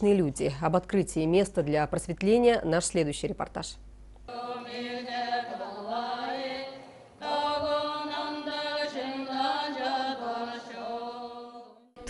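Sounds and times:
voices chanting prayer: 0:04.3 - 0:11.9.

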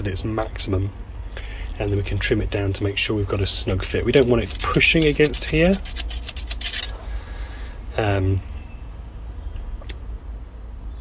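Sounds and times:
tape measure clicking and rattling: 0:01.7 - 0:02.2, 0:03.2 - 0:07.1.

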